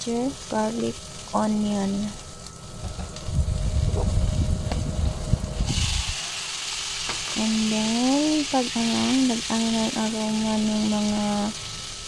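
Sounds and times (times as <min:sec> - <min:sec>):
frying sizzle: 0:00.0 - 0:12.0
low rumble: 0:00.2 - 0:06.4.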